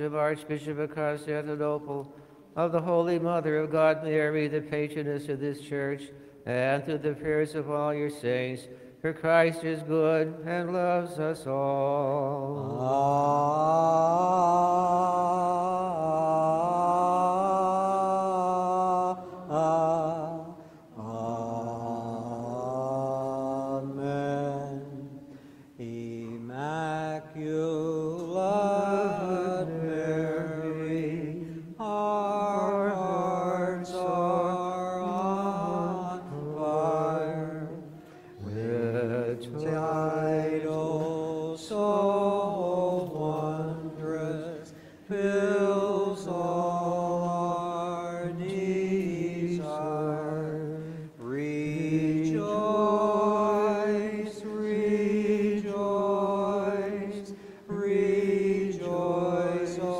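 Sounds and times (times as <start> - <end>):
men chanting unaccompanied: 25.8 - 59.9.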